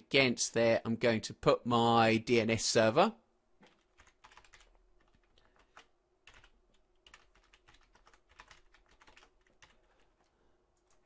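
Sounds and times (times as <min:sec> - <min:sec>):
computer keyboard typing: 0:03.6 - 0:11.0.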